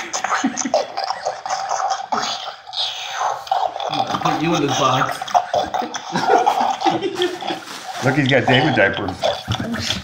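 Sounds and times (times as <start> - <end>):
person laughing and talking: 4.4 - 7.7.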